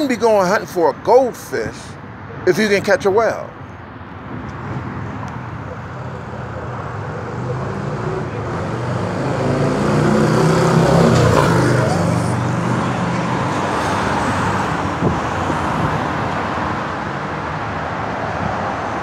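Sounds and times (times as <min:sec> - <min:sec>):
steady traffic noise: 0:00.0 - 0:19.0
vehicle engine passing by: 0:06.0 - 0:16.2.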